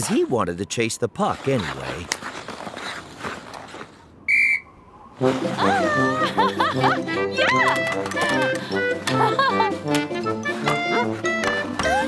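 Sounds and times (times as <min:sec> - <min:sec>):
sports whistle blast: 0:04.3 - 0:04.7.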